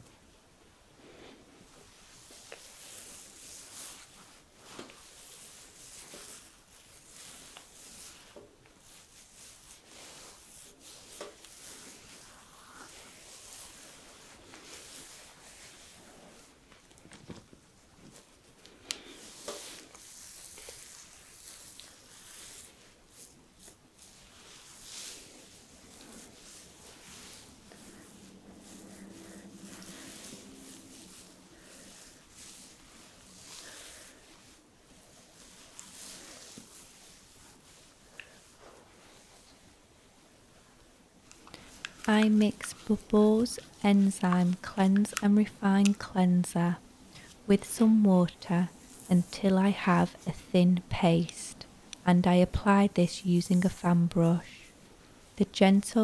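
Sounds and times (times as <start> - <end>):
towel rubbing against beard: 1.0 - 16.8, 17.4 - 51.9.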